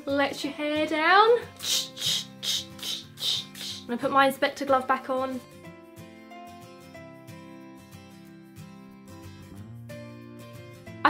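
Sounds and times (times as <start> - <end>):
background music: 0.0 - 11.0
hairspray hissing bursts: 1.6 - 3.9.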